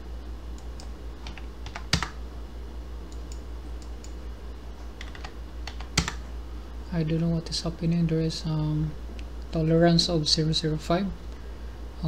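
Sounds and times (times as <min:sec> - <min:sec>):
steady low hum: 0:00.0 - 0:12.0
keyboard keystrokes: 0:00.7 - 0:02.2, 0:05.0 - 0:06.2.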